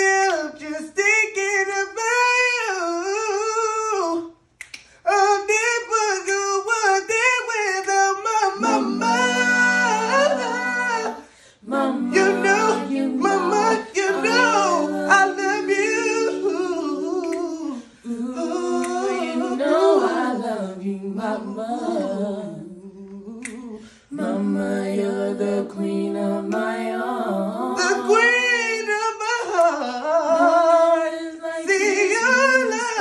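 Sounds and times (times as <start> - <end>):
short sharp clicks: 4.6 - 5.0
boy singing a cappella: 5.1 - 33.0.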